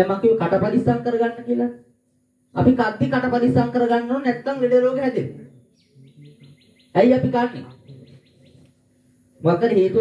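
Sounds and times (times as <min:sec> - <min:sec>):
rapid high-pitched chirping call: 0:05.6 - 0:08.7
man speaking: 0:07.0 - 0:08.2.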